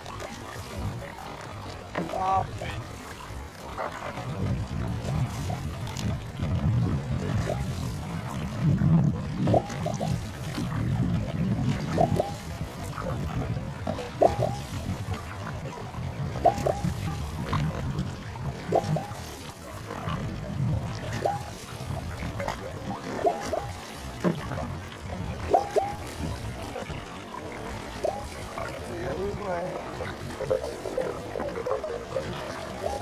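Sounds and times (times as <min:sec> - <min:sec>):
canoe paddle strokes: 0:00.0 - 0:33.0
steady low rumble: 0:02.0 - 0:33.0
short dipping tonal sound: 0:14.2 - 0:14.7, 0:25.5 - 0:26.1.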